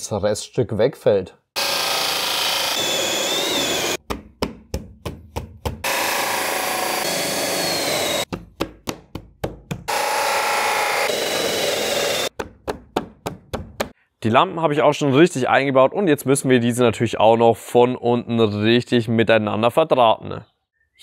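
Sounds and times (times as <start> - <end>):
drill with hole saw cutting boards: 1.6 - 4.0, 5.8 - 8.3, 9.9 - 12.3
vacuum running: 1.6 - 4.0, 5.9 - 8.3, 9.9 - 12.3.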